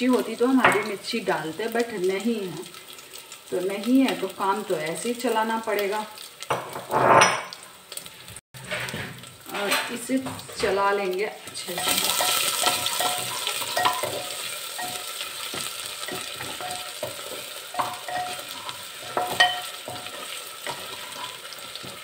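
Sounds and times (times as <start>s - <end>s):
paste sizzling in oil: 0.0s - 6.9s, 7.5s - 22.0s
spatula scraping and knocking pot: 11.7s - 22.0s.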